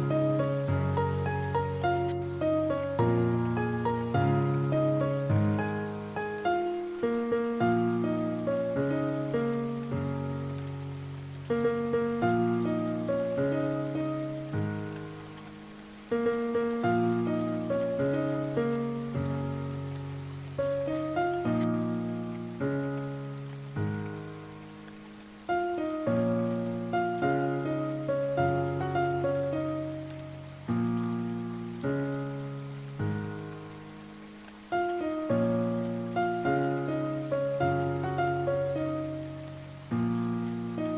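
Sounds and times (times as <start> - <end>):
rain falling on a surface: 0.0 - 40.9
slow solo piano: 0.0 - 40.9.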